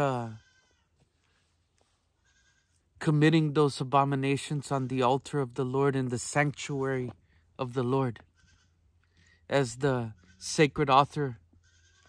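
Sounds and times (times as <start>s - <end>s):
faint goat bleat: 0.0s - 1.4s, 2.0s - 3.0s, 8.0s - 12.0s.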